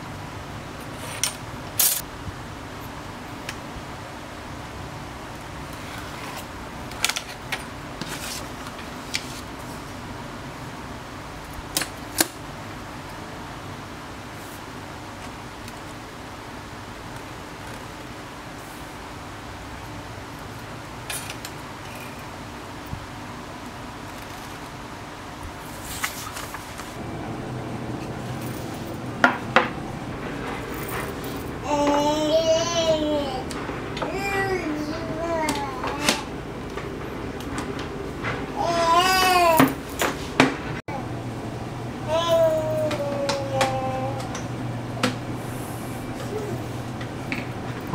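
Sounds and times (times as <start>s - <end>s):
steady background hum: 0.0s - 47.9s.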